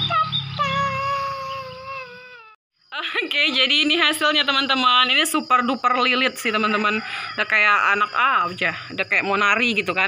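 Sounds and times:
girl squealing: 0.0 - 2.6.

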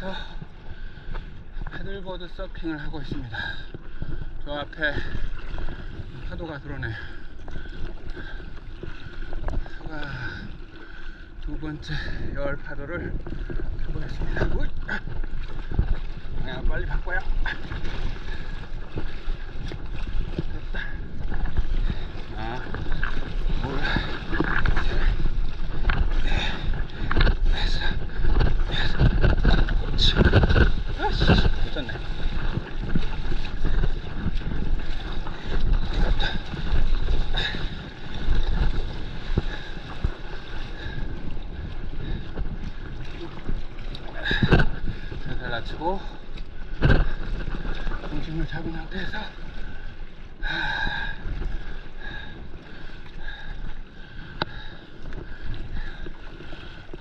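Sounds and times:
water rushing and splashing: 0.0 - 57.0
wind buffeting microphone: 0.0 - 57.0.

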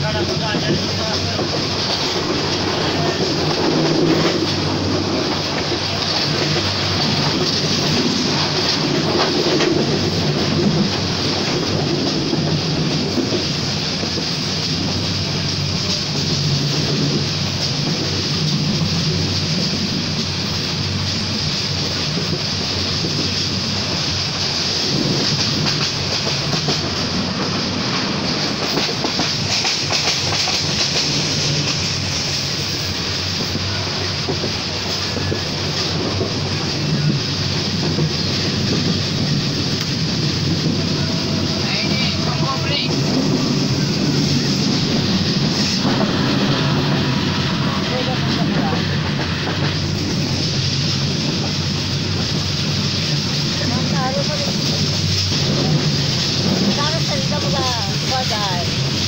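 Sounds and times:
train wheels running on track: 0.0 - 59.0.

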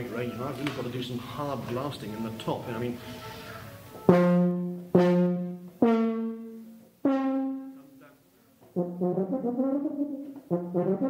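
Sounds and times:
tuba played loudly: 4.0 - 8.1, 8.7 - 11.0.

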